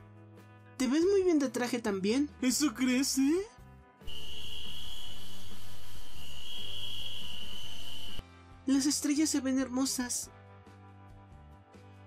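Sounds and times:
faint background music: 0.0 - 4.2, 8.2 - 12.0
crickets trilling: 4.1 - 8.2.

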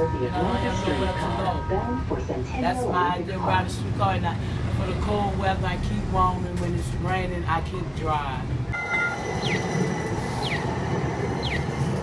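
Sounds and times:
streetcar running rumble: 0.0 - 12.0.

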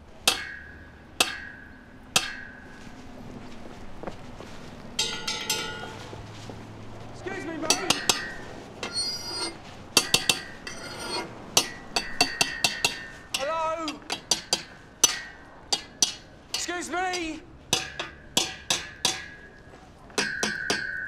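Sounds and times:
metal clanking: 0.0 - 3.0, 5.0 - 6.3, 7.3 - 21.0.

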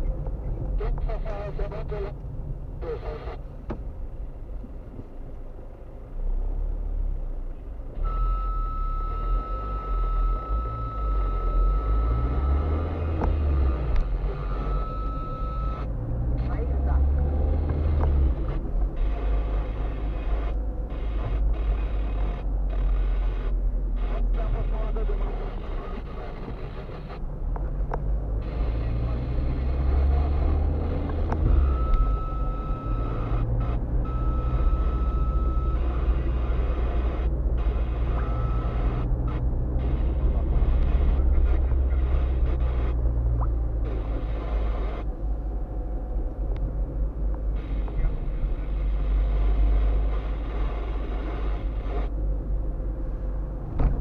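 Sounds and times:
car engine and road noise: 0.0 - 54.0.

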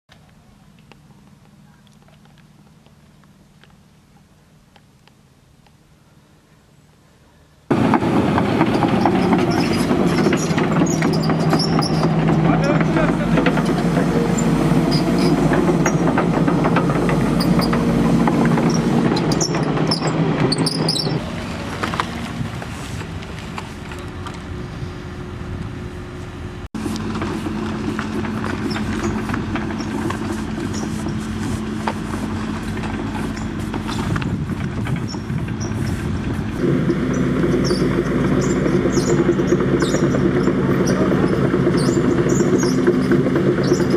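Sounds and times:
excavator diesel engine droning: 7.7 - 43.9
people's voices: 12.4 - 14.9.

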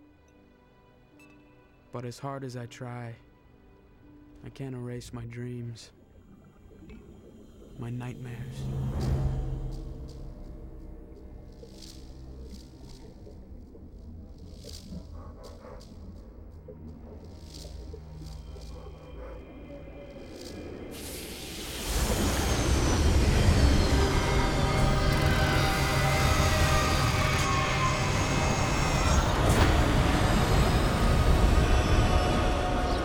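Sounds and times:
film score music: 0.0 - 33.0
sci-fi engine drone: 6.0 - 33.0
falling whine tones: 19.6 - 33.0.

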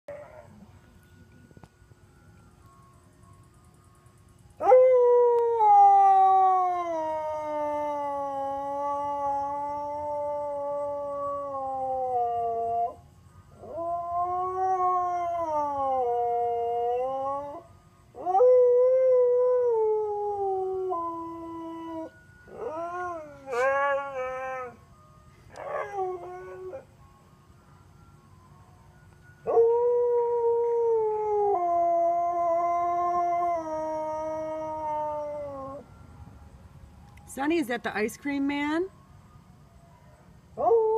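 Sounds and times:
dog howling: 18.2 - 24.8.

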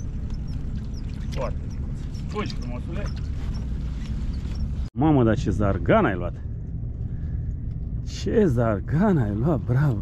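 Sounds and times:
boat engine running: 0.0 - 4.9.

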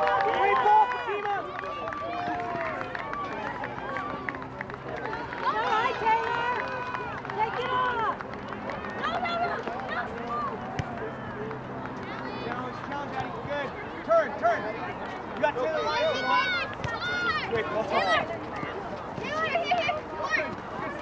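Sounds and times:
voices calling out and talking: 0.0 - 21.0.

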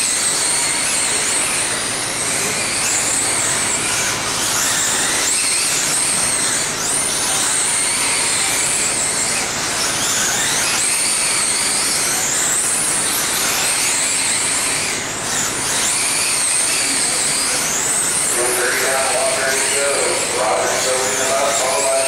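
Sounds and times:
electric motor whines: 0.0 - 22.0
noisy background: 0.0 - 22.0.

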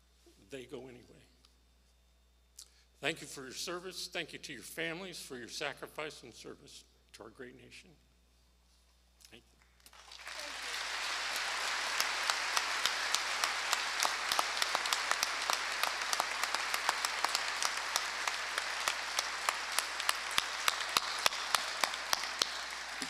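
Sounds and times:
audience applauding: 9.8 - 23.0.

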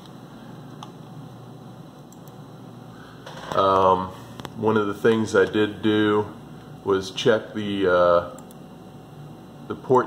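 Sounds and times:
faint room hum and hiss: 0.0 - 10.0.

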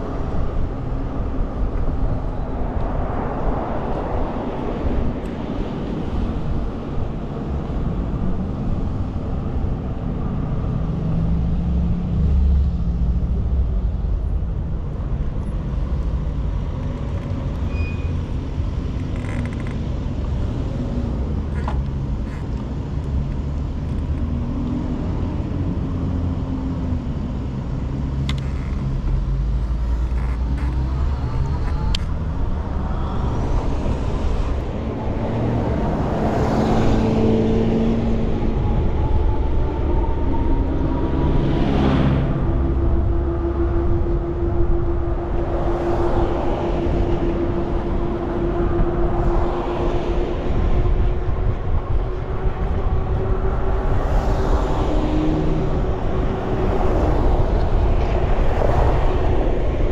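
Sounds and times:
bicycle riding rumble: 0.0 - 59.9
vehicles passing: 0.0 - 59.9.

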